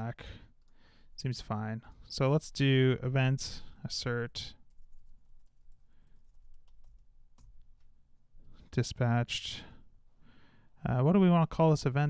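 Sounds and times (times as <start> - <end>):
faint typing on computer keyboard: 0.5 - 1.2, 4.4 - 8.0.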